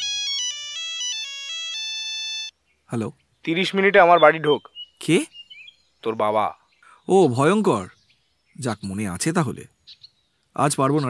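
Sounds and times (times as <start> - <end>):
electronic phone ringtone: 0.0 - 2.5.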